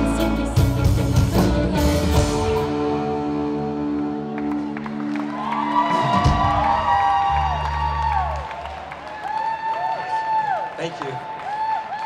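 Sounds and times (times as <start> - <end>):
audience whooping: 4.3 - 12.0.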